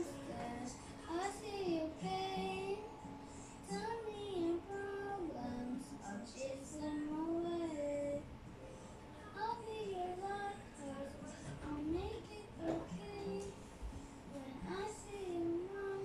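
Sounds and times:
boy singing a slow ballad: 0.0 - 8.3, 9.2 - 16.0
karaoke backing track: 0.0 - 16.0.

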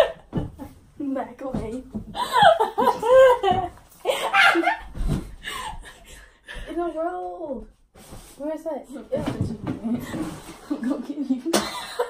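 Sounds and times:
girls laughing and shrieking: 2.2 - 4.9.

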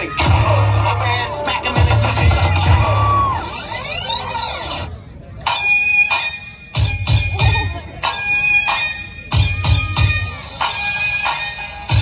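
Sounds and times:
electronic dance music: 0.0 - 4.9, 5.5 - 12.0.

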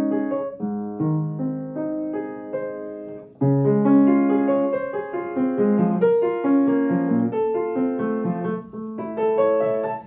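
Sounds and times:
upright piano classical piece: 0.0 - 10.0.

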